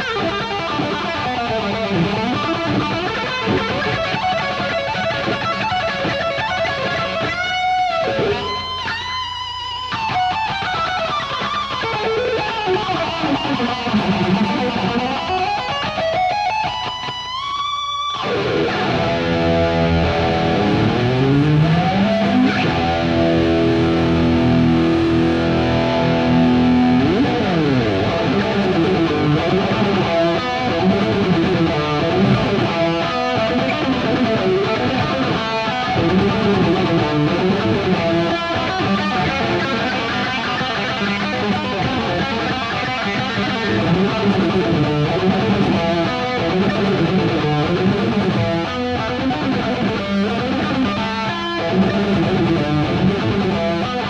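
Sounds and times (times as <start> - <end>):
heavy metal electric guitar solo: 0.0 - 54.0.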